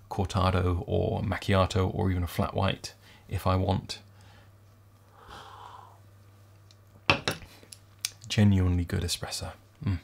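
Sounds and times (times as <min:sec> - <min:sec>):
cup clinking on desk: 0:07.1 - 0:07.4.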